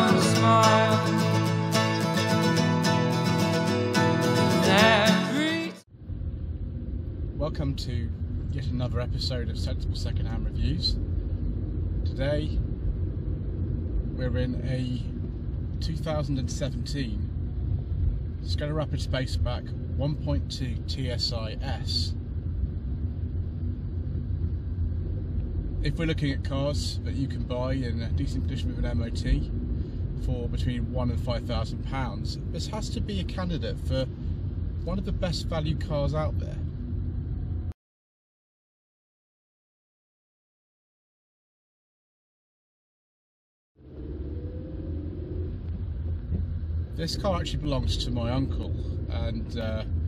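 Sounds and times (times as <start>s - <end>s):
car cabin road and engine rumble: 0.0s - 37.8s, 43.8s - 50.0s.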